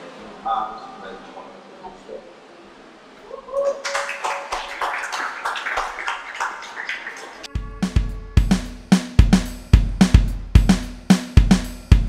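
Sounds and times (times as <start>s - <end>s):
audience clapping: 3.6s - 7.5s
drum kit beat with bass drum: 7.5s - 12.0s.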